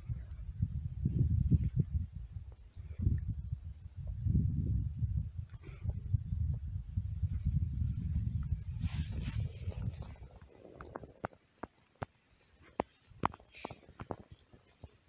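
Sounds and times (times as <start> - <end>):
wind buffeting microphone: 0.0 - 11.4
faint sharp clicks: 9.7 - 14.9.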